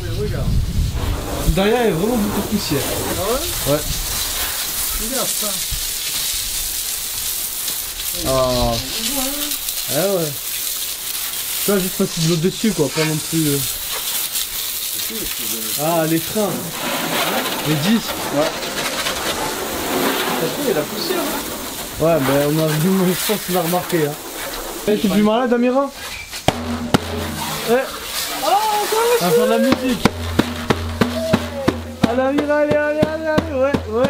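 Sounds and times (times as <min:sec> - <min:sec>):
hose spray hissing onto car: 0:00.0 - 0:34.0
hand frame drum beat: 0:26.5 - 0:34.0.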